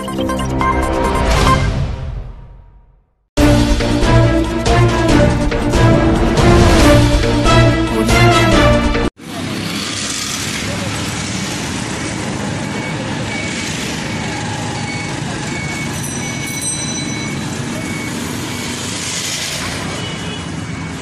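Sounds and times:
road traffic: 3.4s - 21.0s.

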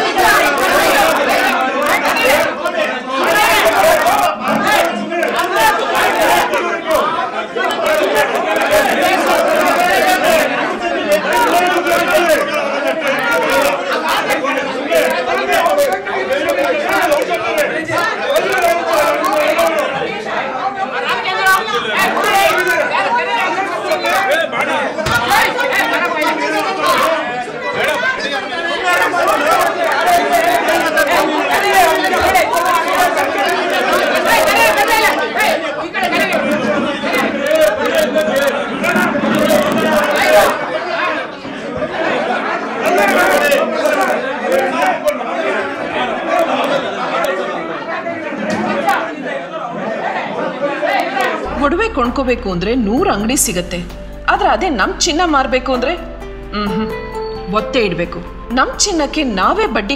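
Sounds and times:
crowd arguing and shouting: 0.0s - 59.9s.

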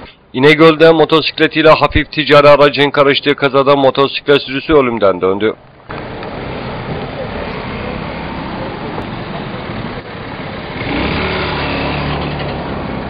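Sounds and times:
traffic noise: 0.0s - 13.0s
vehicle engine: 5.6s - 13.0s
bystanders' voices: 6.0s - 10.8s.

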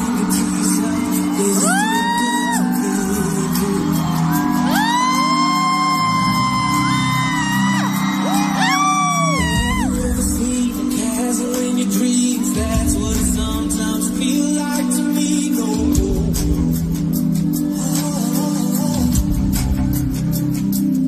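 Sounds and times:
audience screaming: 0.0s - 15.9s.

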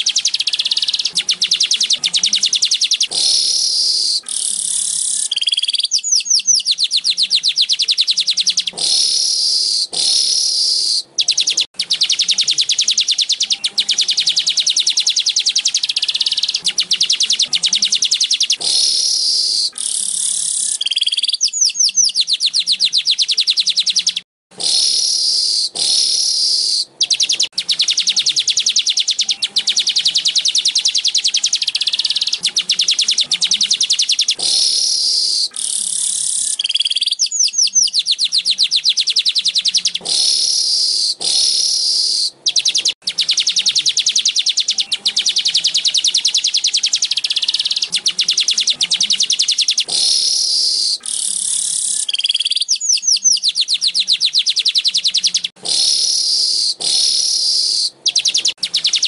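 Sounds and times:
bird song buzzy chattering: 0.0s - 59.0s.

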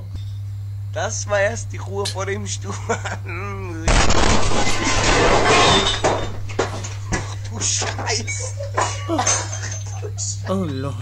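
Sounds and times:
blast and debris: 3.9s - 6.6s.

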